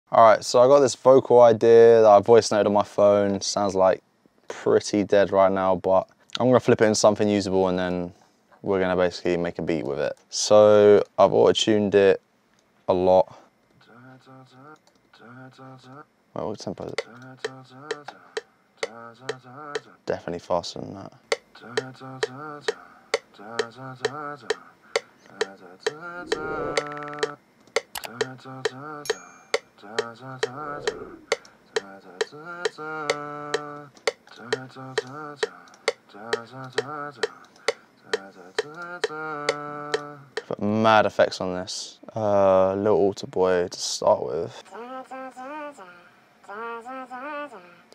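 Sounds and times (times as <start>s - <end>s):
auto-tuned singing voice: 13.8s - 27.4s, 28.0s - 40.9s, 44.1s - 47.9s.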